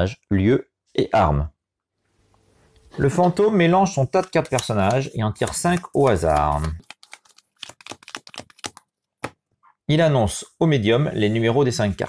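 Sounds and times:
cards being shuffled: 0:04.1 - 0:09.4.

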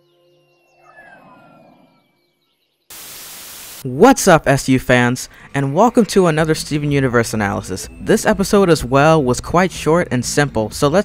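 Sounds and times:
loud television static: 0:02.9 - 0:03.9.

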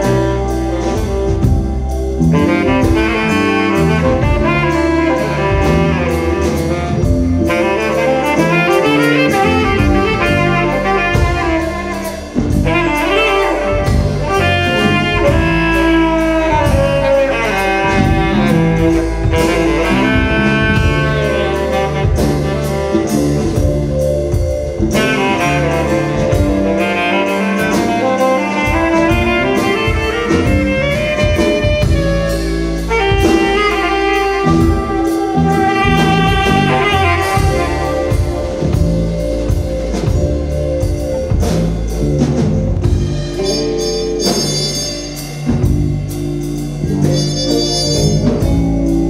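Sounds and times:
drum kit beat: 0:00.0 - 0:49.0
electric bass: 0:00.0 - 0:49.0
keyboard: 0:00.0 - 0:49.0
saxophone melody: 0:00.0 - 0:49.0
soul band playing: 0:00.0 - 0:49.0
trumpet: 0:00.0 - 0:49.0.

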